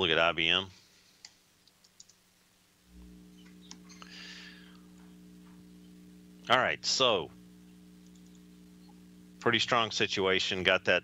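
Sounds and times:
computer mouse clicks: 1.2 - 2.2
low steady hum: 2.5 - 11.0.

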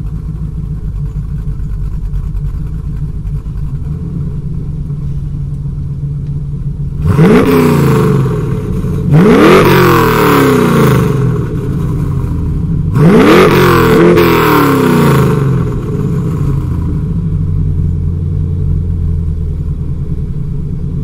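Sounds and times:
car engine idling and revving: 0.0 - 21.0.

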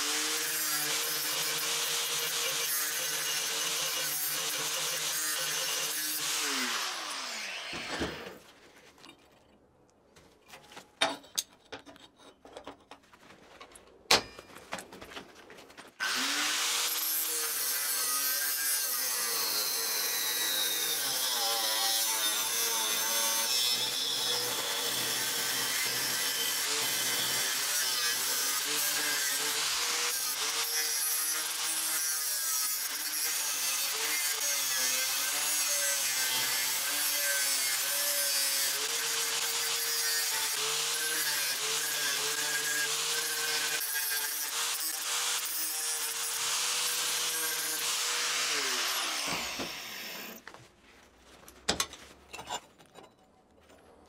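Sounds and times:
angle grinder cutting steel: 0.0 - 8.3, 16.0 - 50.4.

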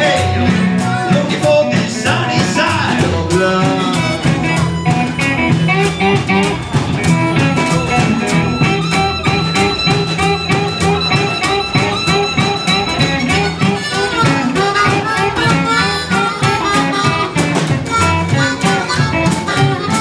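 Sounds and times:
double bass: 0.0 - 20.0
electric guitar: 0.0 - 20.0
harmonica: 0.0 - 20.0.

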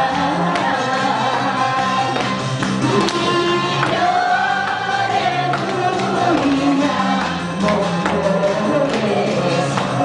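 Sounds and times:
disco backing track: 0.0 - 10.0.

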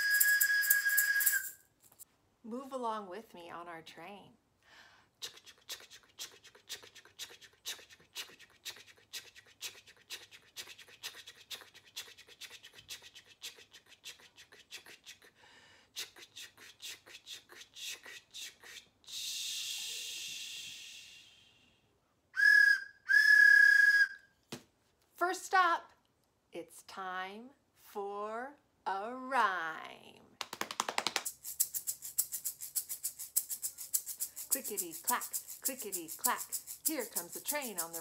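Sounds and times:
wooden train whistle blasts: 0.0 - 1.6, 22.4 - 24.2
person imitating train chugging: 33.9 - 38.0.

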